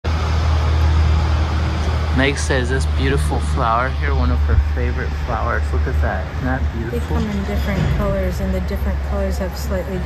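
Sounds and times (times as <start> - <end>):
traffic hum and rumble: 0.0 - 10.0.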